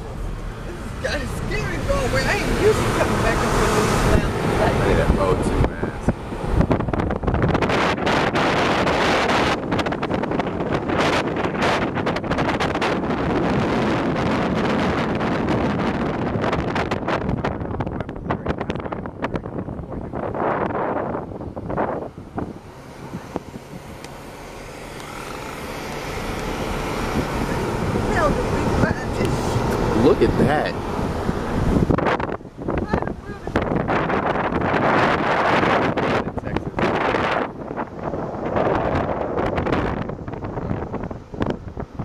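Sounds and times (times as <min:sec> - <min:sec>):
car road and engine noise: 0:00.0 - 0:42.0
wind buffeting microphone: 0:00.0 - 0:42.0.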